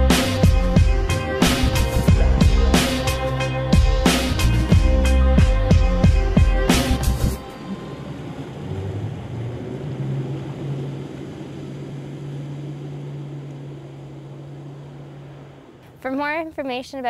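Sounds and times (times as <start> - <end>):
rushing water: 0.0 - 16.6
low motor hum: 0.0 - 17.0.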